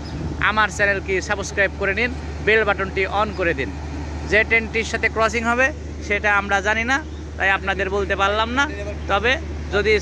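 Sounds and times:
man talking: 0:00.4 - 0:10.0.

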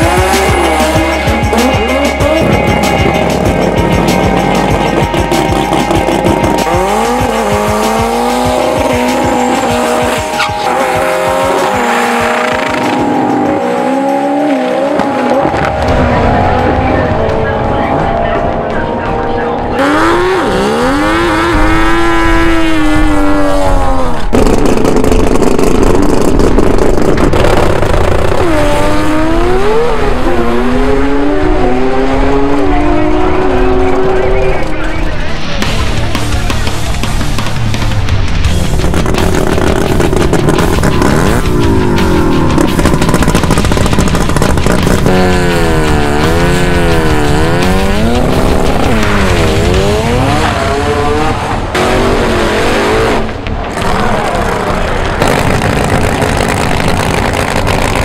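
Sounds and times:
engines revving hard: 0:00.0 - 0:18.1, 0:18.7 - 0:58.0
music track: 0:00.0 - 0:24.4, 0:27.5 - 0:56.7.

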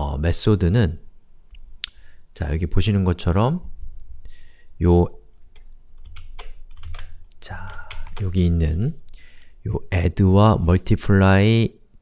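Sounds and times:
keyboard keys clicking: 0:05.5 - 0:08.3.

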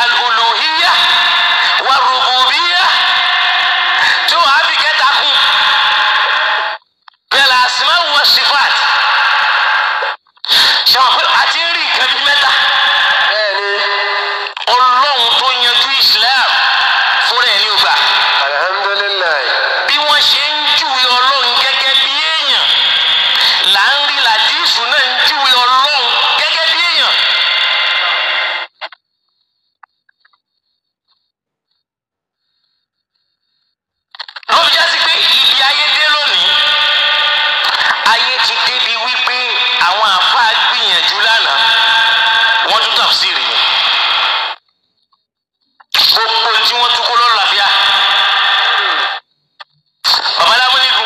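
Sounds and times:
tinny voice through radio: 0:00.0 - 0:29.0, 0:34.2 - 0:44.6, 0:45.8 - 0:49.2, 0:50.0 - 0:51.0.

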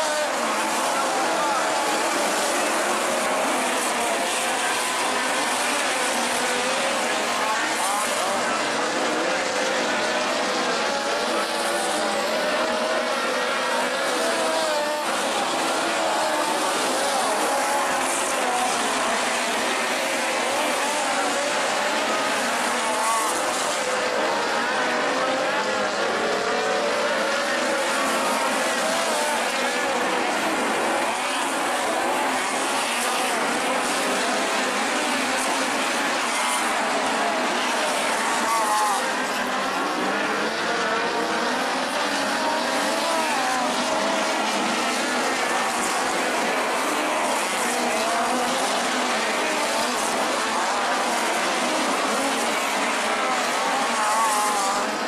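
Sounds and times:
race car engines revving and passing: 0:00.0 - 0:55.0.

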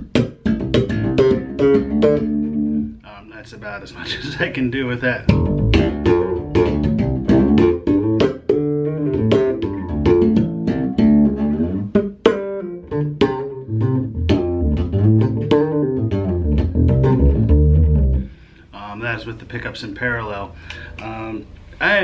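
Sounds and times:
electric bass played fingerstyle: 0:00.0 - 0:03.0, 0:04.0 - 0:18.7.

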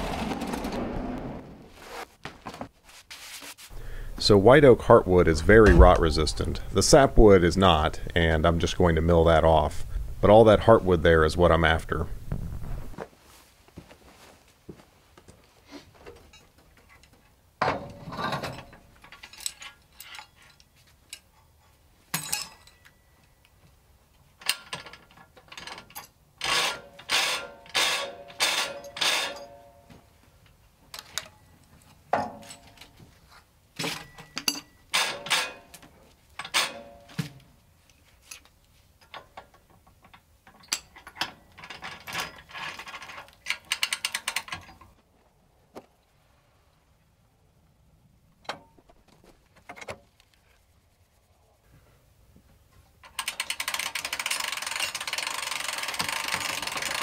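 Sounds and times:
metal clamps clanking and ratcheting: 0:17.7 - 0:21.4, 0:22.1 - 0:22.9, 0:24.4 - 0:29.7, 0:33.8 - 0:37.2, 0:39.0 - 0:45.0, 0:53.0 - 0:57.0.

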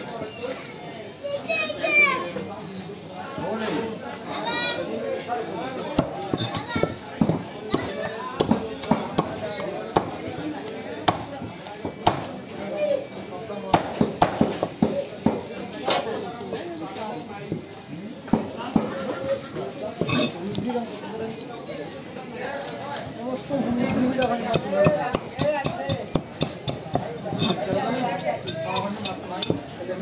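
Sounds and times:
knife chopping on wooden block: 0:23.9 - 0:27.9.

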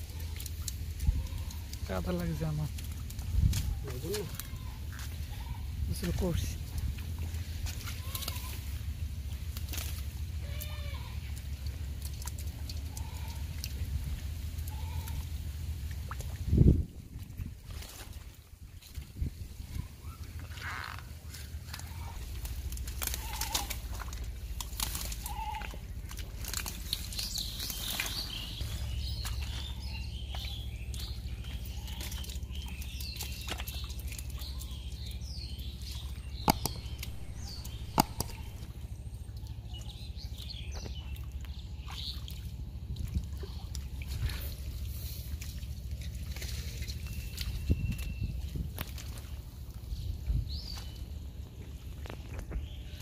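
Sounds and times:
birds calling and chirping: 0:00.0 - 0:16.7, 0:17.4 - 0:53.0
low steady rumble: 0:00.0 - 0:53.0.

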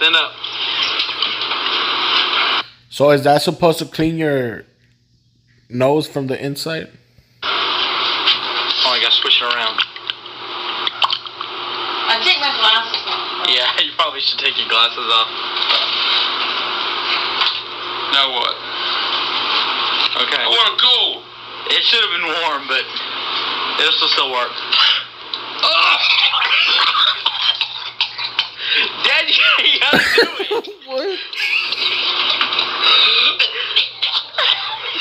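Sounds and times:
man gagging and choking: 0:30.0 - 0:30.8.

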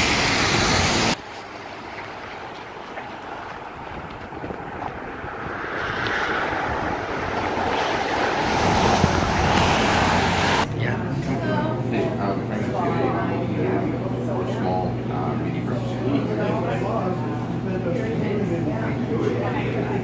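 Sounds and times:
street noise: 0:00.0 - 0:20.0
wind on microphone: 0:02.5 - 0:10.7.

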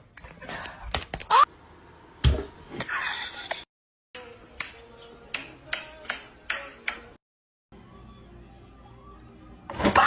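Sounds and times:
faint music: 0:04.2 - 0:10.0
sharp snaps: 0:04.6 - 0:07.2.

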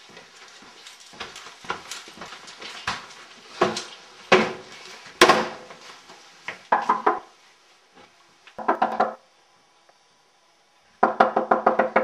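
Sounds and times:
rapid knocking on a door: 0:06.7 - 0:07.2, 0:08.6 - 0:09.2, 0:11.0 - 0:12.0.

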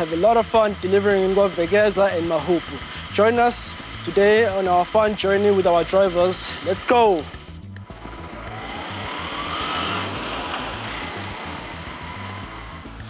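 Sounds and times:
music with low beat: 0:00.0 - 0:13.0
rising whoosh: 0:06.5 - 0:13.0.

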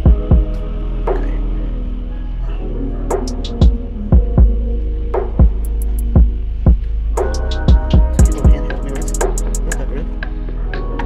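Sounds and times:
deep bass drum hits: 0:00.0 - 0:01.3, 0:03.2 - 0:09.7
electronic beat: 0:00.0 - 0:01.8, 0:03.1 - 0:11.0
steady low bass: 0:00.0 - 0:11.0.

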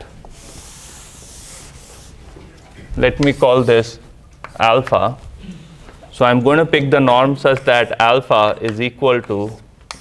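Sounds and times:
rubbing on a chalkboard: 0:00.3 - 0:02.3, 0:03.2 - 0:04.0, 0:06.9 - 0:08.4, 0:09.1 - 0:10.0.

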